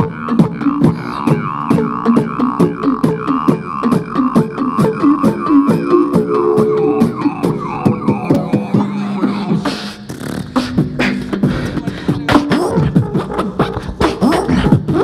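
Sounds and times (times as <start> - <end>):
beatbox kick and snare: 0.0 - 15.0
hummed bass line: 0.0 - 15.0.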